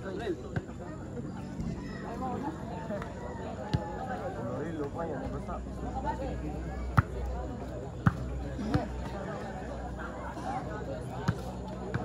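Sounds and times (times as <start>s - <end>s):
crowd chattering and calling out: 0.0s - 12.0s.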